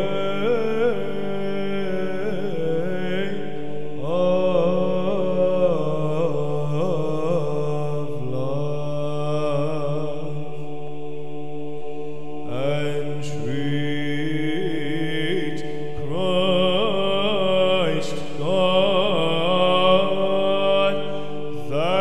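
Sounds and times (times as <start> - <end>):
chant melody sung: 0.0 - 22.0
low sung drone: 0.0 - 22.0.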